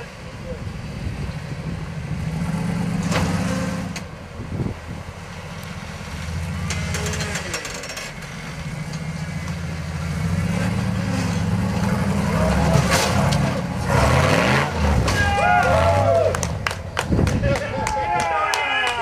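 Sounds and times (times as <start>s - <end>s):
buggy engine revving: 0.0s - 17.5s.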